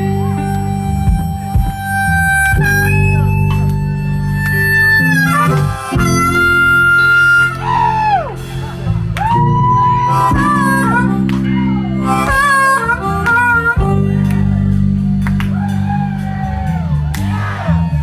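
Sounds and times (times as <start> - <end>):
amplified harmonica solo: 0.0 - 17.2
live band with guitar: 0.0 - 18.0.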